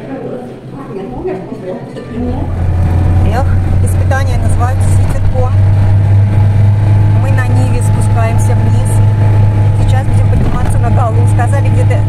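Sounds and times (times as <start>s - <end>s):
car engine and road drone: 2.2s - 12.0s
person's voice: 3.2s - 5.6s, 7.2s - 9.0s, 9.8s - 12.0s.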